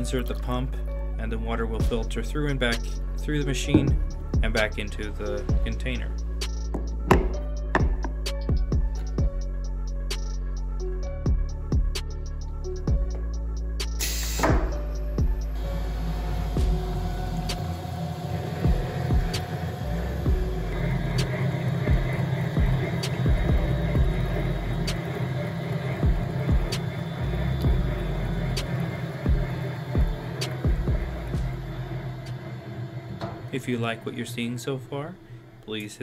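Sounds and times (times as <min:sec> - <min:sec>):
background music with beat: 0:00.0 - 0:35.1
polishing machine hum: 0:15.5 - 0:34.9.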